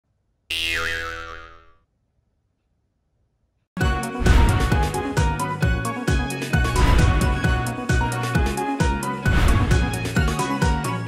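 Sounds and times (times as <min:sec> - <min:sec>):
cartoon boing: 0:00.5 - 0:01.8.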